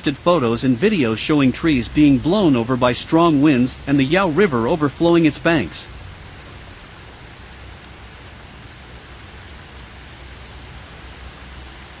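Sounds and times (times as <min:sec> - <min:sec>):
steady rain: 0:00.0 - 0:12.0.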